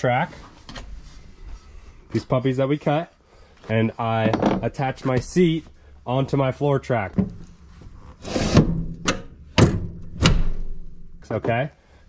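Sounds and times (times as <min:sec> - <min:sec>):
metal scrape: 0:08.0 - 0:08.8.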